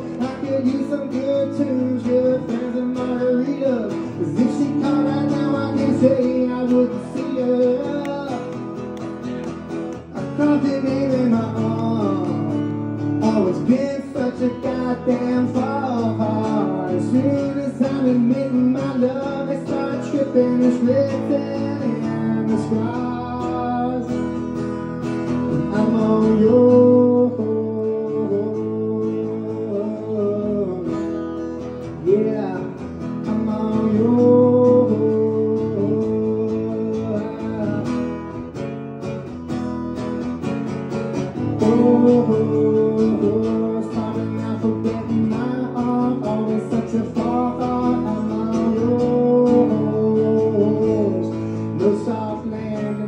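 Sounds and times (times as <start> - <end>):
acoustic guitar strumming: 0.0 - 53.0.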